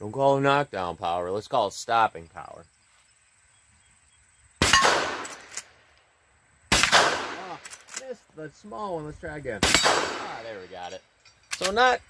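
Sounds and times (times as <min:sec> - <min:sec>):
rifle shots: 0:04.6 - 0:05.8, 0:06.7 - 0:08.0, 0:09.6 - 0:10.9
bullet clanging on steel target: 0:09.7 - 0:11.9.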